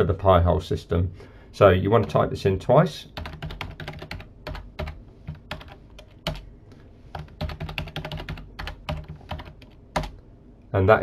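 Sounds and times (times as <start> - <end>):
computer keyboard typing: 3.2 - 6.4, 7.1 - 10.2.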